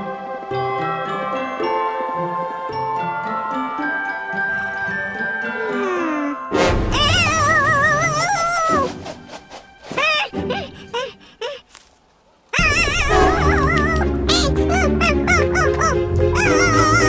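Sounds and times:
cartoon music with warbling melody: 2.1 - 9.0, 12.6 - 17.0.

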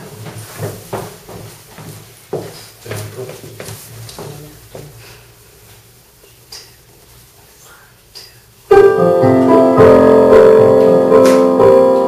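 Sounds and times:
piano playing bossa nova chords: 8.6 - 12.0.

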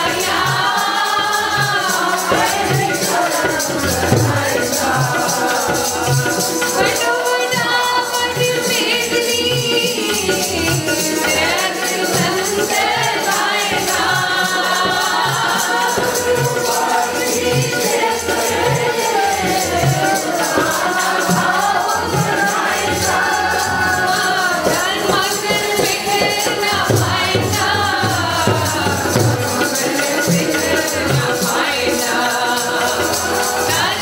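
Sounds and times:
harmonium: 0.0 - 34.0
high jingling beat: 0.0 - 34.0
low tabla strokes: 0.0 - 34.0
many voices singing together: 0.0 - 34.0.

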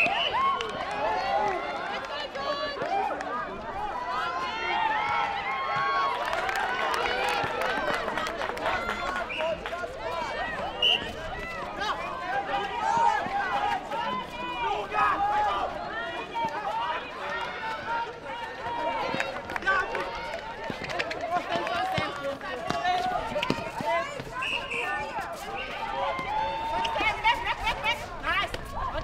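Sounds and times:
crowd shouting and calling: 0.0 - 29.0
footsteps on hard court: 17.6 - 27.3.

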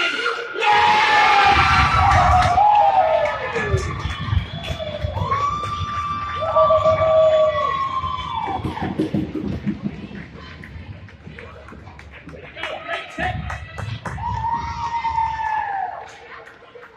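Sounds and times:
long drawn-out yells: 0.0 - 3.9, 14.2 - 16.1
spectators cheering: 0.0 - 9.6, 12.4 - 16.9.

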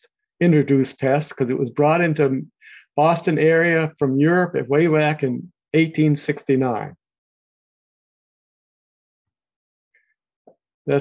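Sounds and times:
man speaking: 0.4 - 7.0.

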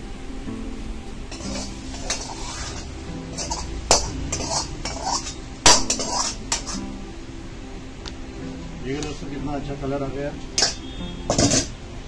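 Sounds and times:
metal ladle scraping and clinking: 1.3 - 6.9, 10.6 - 11.8
loud metal clang: 3.4 - 6.8, 10.6 - 11.8.

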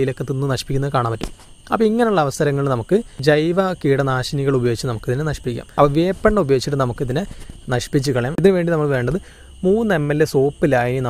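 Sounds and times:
man narrating: 0.0 - 11.0.

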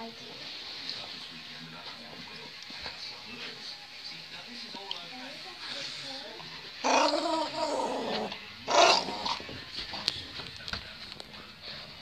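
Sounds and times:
small dog growling: 6.8 - 9.5.

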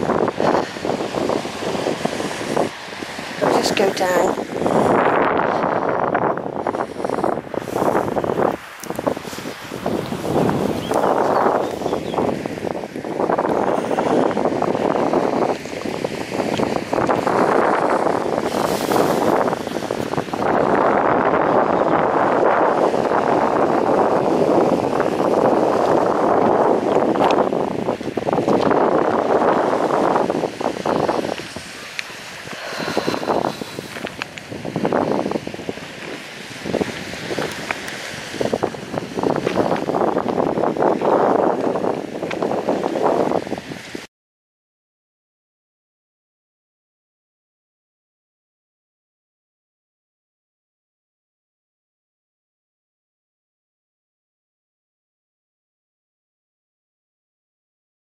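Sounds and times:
wind buffeting microphone: 0.0 - 44.1.

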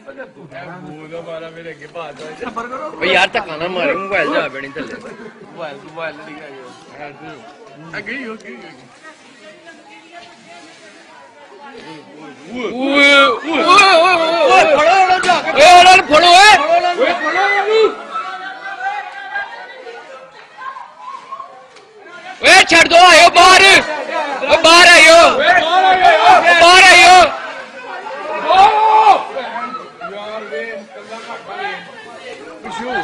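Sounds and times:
chatter of voices: 0.0 - 33.0
people shouting and calling out: 0.0 - 33.0.

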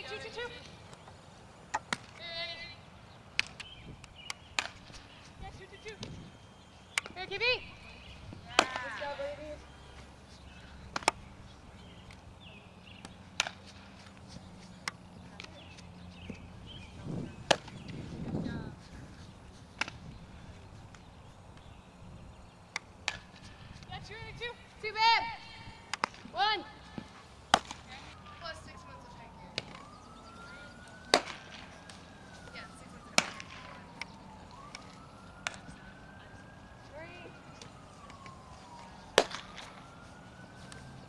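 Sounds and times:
faint siren wailing: 0.0 - 1.6, 5.0 - 41.0
softball smacks: 1.7 - 2.2, 3.4 - 4.9, 10.9 - 11.2, 13.0 - 13.6, 17.4 - 18.0, 19.8 - 20.0, 22.7 - 23.3, 25.9 - 26.3, 27.0 - 27.8, 31.1 - 32.0, 33.1 - 34.1, 39.1 - 39.8
ball caught in a glove: 27.0 - 27.8, 31.1 - 31.6, 33.2 - 34.1, 39.2 - 39.6.

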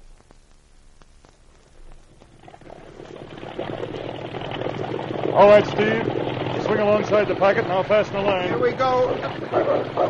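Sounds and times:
water noise: 0.0 - 10.0
motor boat engine at full throttle: 3.2 - 10.0.

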